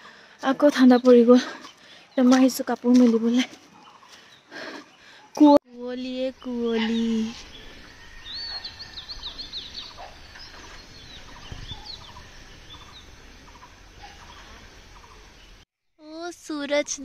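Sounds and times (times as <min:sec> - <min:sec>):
birds chirping: 0:00.0 - 0:15.6
background hiss: 0:07.0 - 0:15.6.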